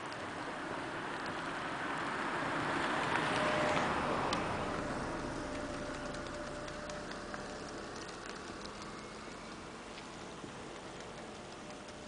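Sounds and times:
outdoor background noise: 0:00.0 - 0:12.0
light ticks: 0:03.4 - 0:12.0.

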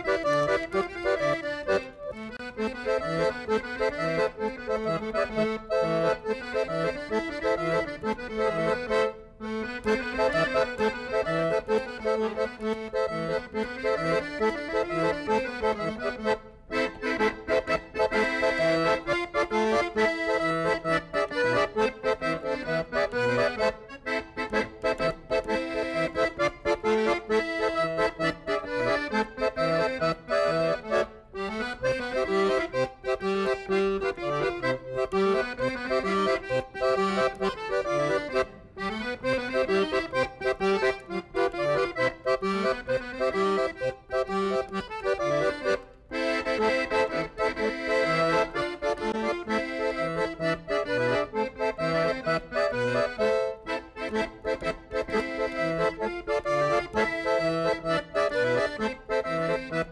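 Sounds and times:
accordion playing: 0:00.0 - 0:59.9.

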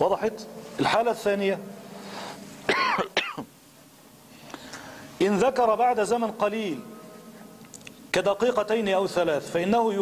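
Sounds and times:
breath: 0:01.9 - 0:02.6, 0:04.3 - 0:05.2
man clearing his throat: 0:02.7 - 0:03.5.

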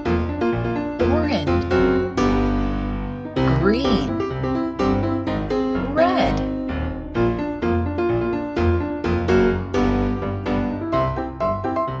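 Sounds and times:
bass line: 0:00.0 - 0:11.6
piano-like keyboard notes: 0:00.0 - 0:12.0.

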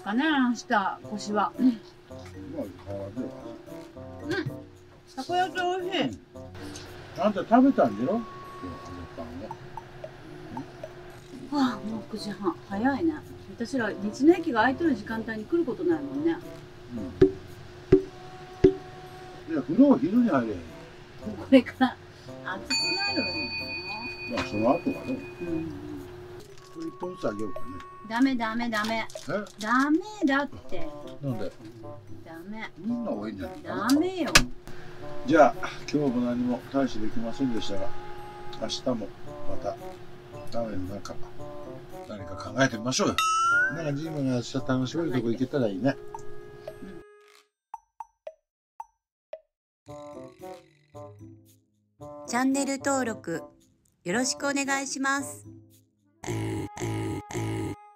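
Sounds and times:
people talking: 0:07.2 - 0:09.6, 0:11.4 - 0:17.2, 0:21.3 - 0:26.0, 0:26.8 - 0:31.5, 0:32.3 - 0:34.4, 0:35.3 - 0:37.9, 0:42.1 - 0:46.0, 0:52.3 - 0:53.4
bell-like ringing tone: 0:07.7 - 0:11.2, 0:22.7 - 0:26.0, 0:26.6 - 0:28.2.

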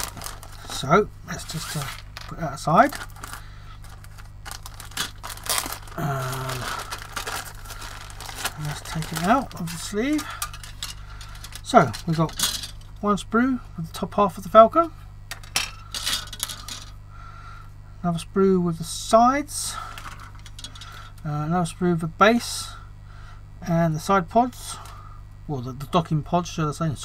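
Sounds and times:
plastic bag crinkling: 0:00.0 - 0:12.8
plastic sprues clattering: 0:00.0 - 0:12.9, 0:15.3 - 0:16.9
rustling: 0:02.9 - 0:12.7.

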